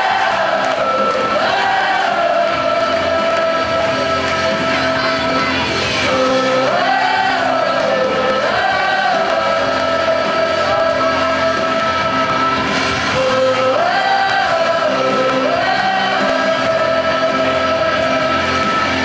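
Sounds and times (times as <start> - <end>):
girls singing: 0.0 - 19.0
musical accompaniment: 0.0 - 19.0.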